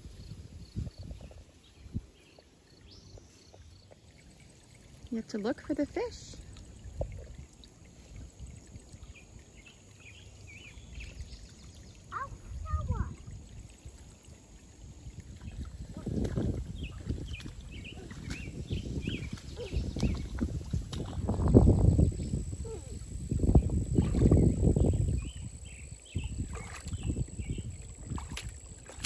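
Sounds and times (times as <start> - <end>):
creek water splashing: 0.0 - 29.0.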